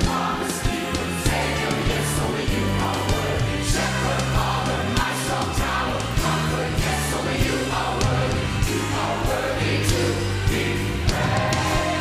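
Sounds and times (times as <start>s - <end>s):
bass: 0.0s - 12.0s
choir singing gospel: 0.0s - 12.0s
drum kit beat: 0.0s - 12.0s.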